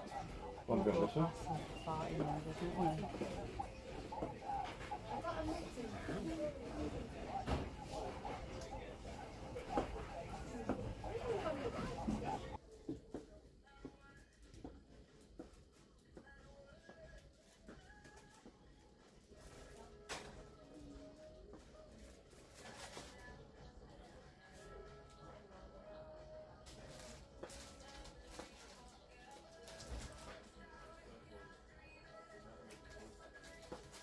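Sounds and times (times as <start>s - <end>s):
shoppers talking: 0.0s - 12.6s
faint music: 0.0s - 34.0s.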